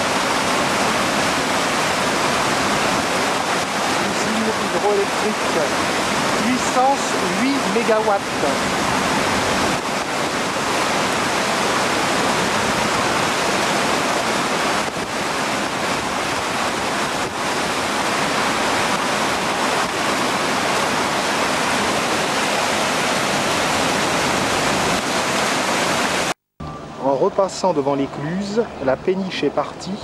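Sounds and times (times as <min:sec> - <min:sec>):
turbulent water rushing: 0:00.0 - 0:26.4.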